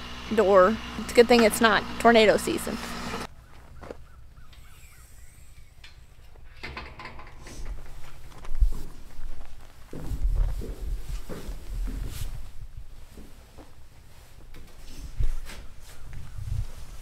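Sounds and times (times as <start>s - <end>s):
distant bird calls: 2.8s - 6.6s
rustling: 5.7s - 17.0s
footsteps: 7.4s - 17.0s.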